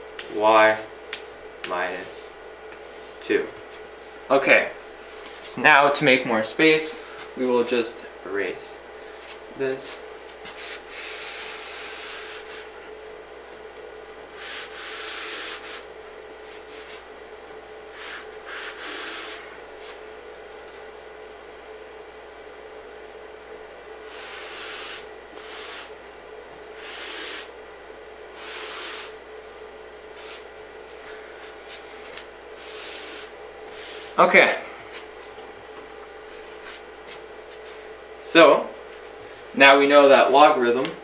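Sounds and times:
eraser rubbing on chalkboard: 0:24.2 - 0:25.9, 0:26.8 - 0:27.5, 0:28.4 - 0:29.2, 0:30.1 - 0:30.4
sponge wiping a chalkboard: 0:30.1 - 0:31.1.

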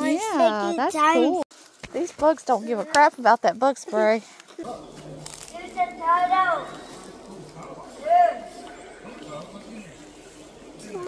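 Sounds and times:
background hiss: 0:00.1 - 0:11.0.

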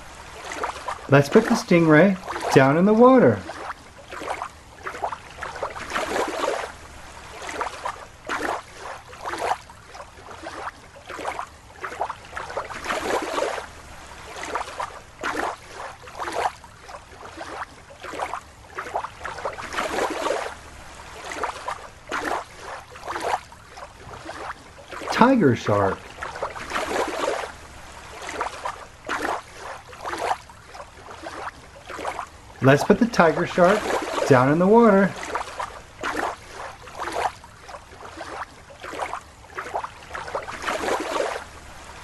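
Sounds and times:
water splashing and sloshing: 0:00.0 - 0:42.0.

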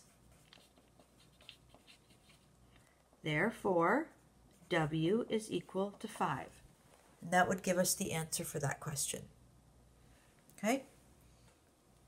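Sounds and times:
pen scratching on paper: 0:00.0 - 0:02.5.

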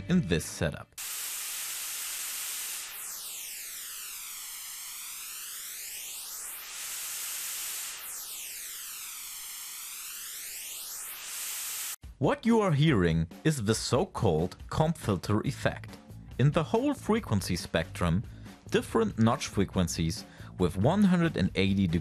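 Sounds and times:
flanging white noise whoosh: 0:01.2 - 0:12.0.

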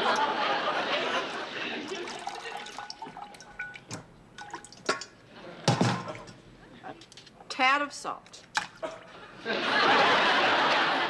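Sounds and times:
water dripping into sink: 0:01.8 - 0:05.2.

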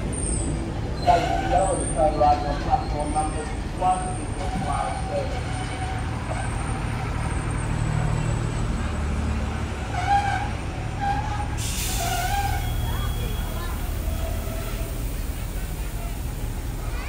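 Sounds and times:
train rumbling slowly: 0:00.0 - 0:17.0
air brakes hissing: 0:10.1 - 0:17.0.

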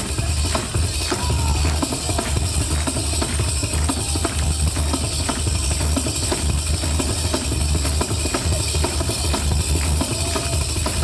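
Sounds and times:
frame drum fast rhythm: 0:00.0 - 0:11.0.

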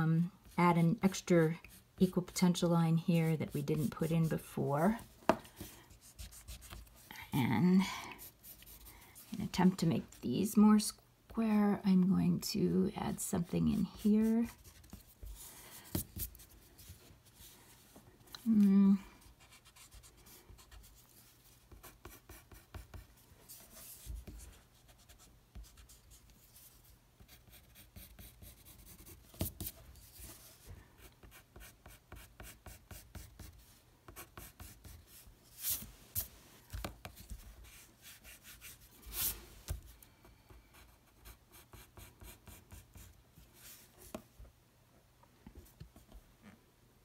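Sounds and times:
pencil scratching on paper: 0:21.7 - 0:35.8.

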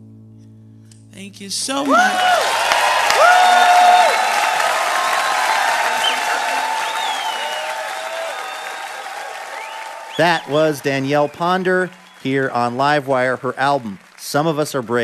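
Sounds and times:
audience applauding and cheering: 0:01.8 - 0:15.0
high whoops: 0:01.9 - 0:11.0.

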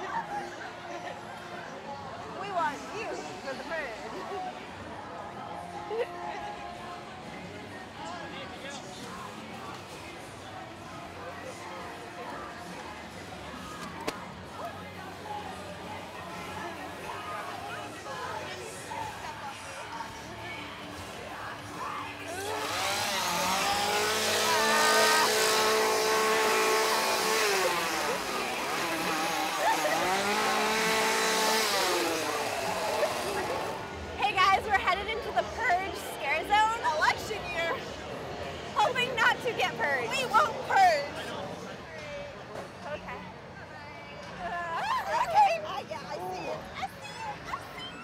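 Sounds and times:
crowd noise: 0:00.0 - 0:48.0
chainsaw revving: 0:22.2 - 0:34.0.

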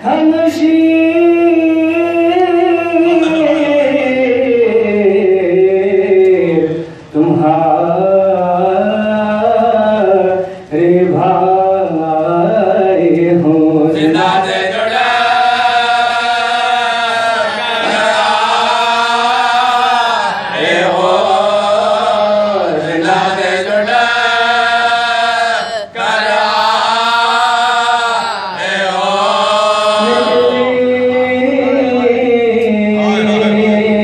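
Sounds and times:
man chanting into a microphone: 0:00.0 - 0:34.0.

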